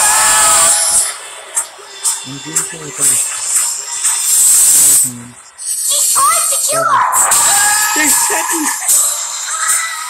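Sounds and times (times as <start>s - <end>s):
person speaking: 5.0s - 5.4s
high-pitched screaming: 6.8s - 9.0s.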